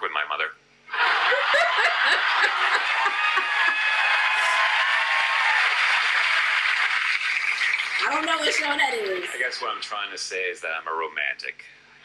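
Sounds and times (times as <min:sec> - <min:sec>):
audience laughing and applauding: 0:00.9 - 0:09.7
woman laughing close: 0:01.3 - 0:03.9.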